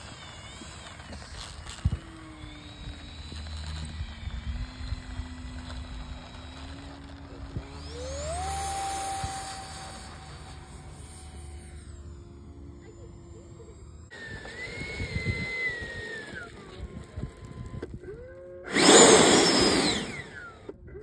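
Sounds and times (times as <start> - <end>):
electric motor whining: 0.0 - 21.0.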